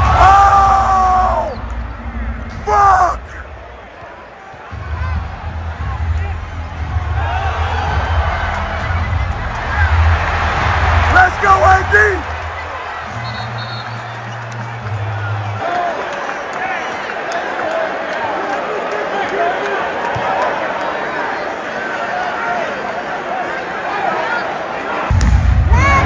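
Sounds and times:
arena crowd voices: 0.0s - 26.0s
loud shout from crowd: 15.0s - 26.0s
deep bass line: 25.1s - 26.0s.

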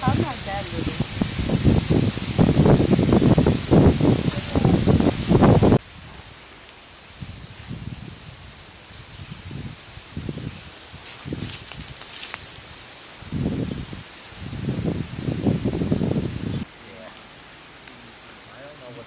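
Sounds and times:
rustling of dry leaves and brush: 0.0s - 19.0s
handling of leafy vegetation: 10.3s - 12.8s.

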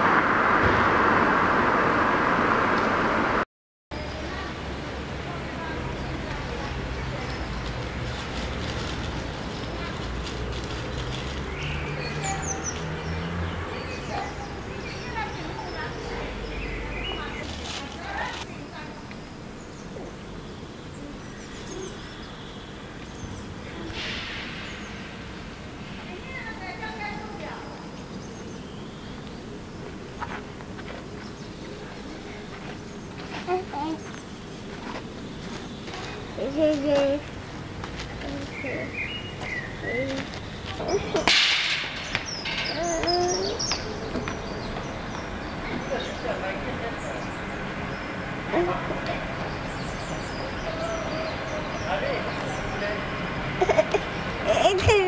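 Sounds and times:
small birds chirping: 4.0s - 55.0s.

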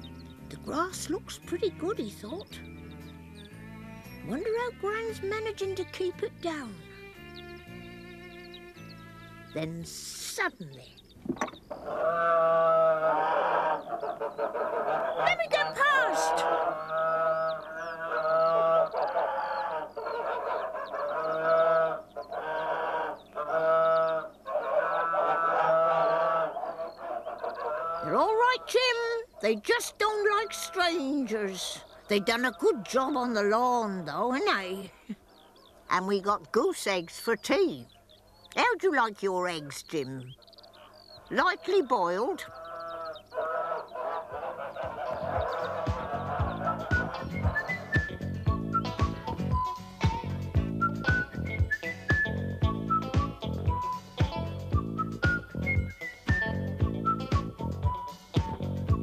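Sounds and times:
bass notes of theme music: 0.0s - 9.7s, 45.0s - 59.0s
geese honking: 0.0s - 54.0s
whistled tune: 45.5s - 59.0s.

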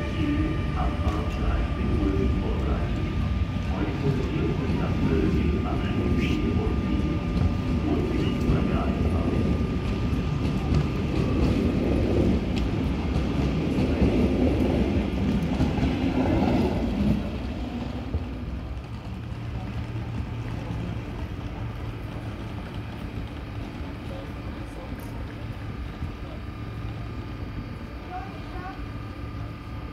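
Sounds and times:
train wheels rumbling on rails: 0.0s - 29.9s.

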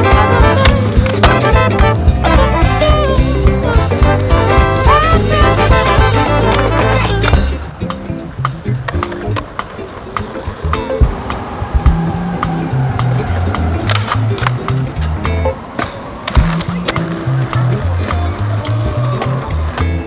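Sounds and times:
background music with bass: 0.0s - 15.6s, 16.4s - 20.0s
skateboard clacks: 0.0s - 20.0s
skateboard wheels rolling on stone: 0.0s - 20.0s.

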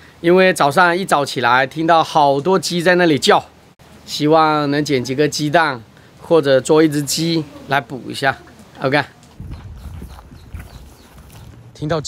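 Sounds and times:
footsteps on sand and dry leaves: 9.1s - 11.8s.

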